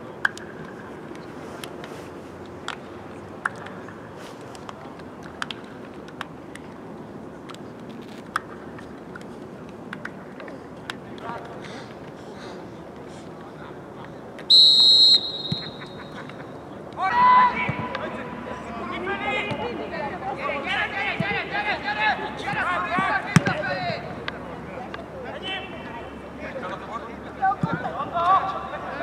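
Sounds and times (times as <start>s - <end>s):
referee's whistle blast: 14.5s - 16.2s
players shouting: 14.7s - 24.3s.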